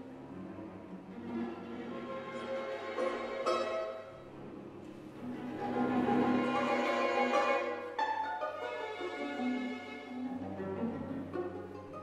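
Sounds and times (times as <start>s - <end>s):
string quartet playing: 0.0s - 12.0s.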